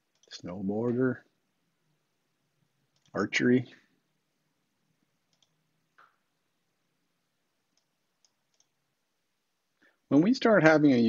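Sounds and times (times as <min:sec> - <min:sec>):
faint computer mouse clicks: 0:00.1 - 0:00.4, 0:05.3 - 0:06.2, 0:07.7 - 0:08.8.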